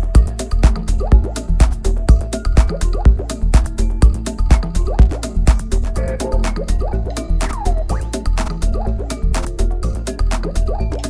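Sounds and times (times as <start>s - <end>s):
kick drum: 0.0s - 10.0s
fast ticking hi-hats: 0.0s - 11.0s
falling-pitch blip: 6.0s - 7.7s.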